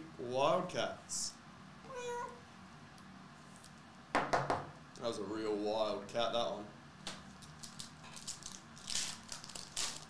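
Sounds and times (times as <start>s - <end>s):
cat meow: 1.9s - 2.4s.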